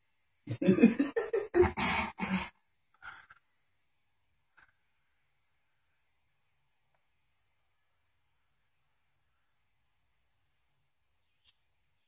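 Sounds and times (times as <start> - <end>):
man laughing: 0.5 - 2.4
man clearing throat: 0.5 - 2.5.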